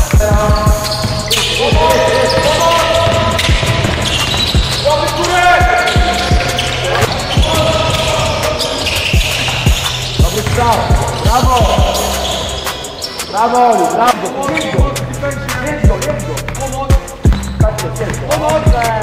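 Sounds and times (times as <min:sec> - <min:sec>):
shoes squeaking on court: 0:00.4 - 0:15.0, 0:16.0 - 0:18.9
basketball bouncing on wooden floor: 0:00.5 - 0:04.9, 0:05.6 - 0:12.0.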